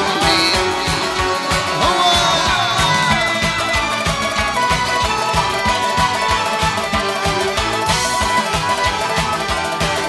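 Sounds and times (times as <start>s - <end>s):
drums beating: 0.0s - 10.0s
plucked lute strings: 0.0s - 10.0s
sliding melody: 0.0s - 10.0s.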